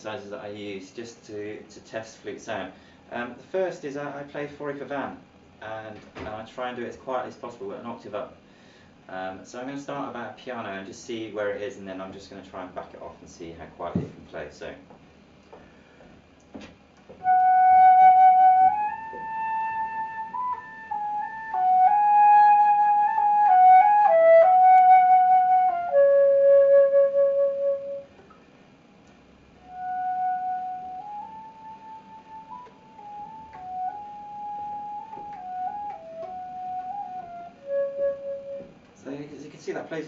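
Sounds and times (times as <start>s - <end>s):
flute playing slow melody: 17.2s - 28.1s, 29.6s - 38.9s.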